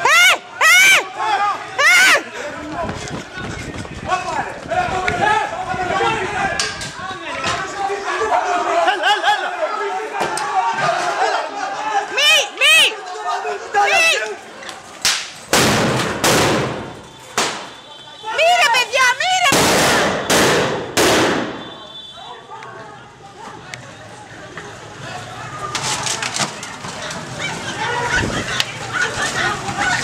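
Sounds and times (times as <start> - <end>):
people shouting: 0.0 - 2.8, 4.1 - 14.5, 18.0 - 20.2.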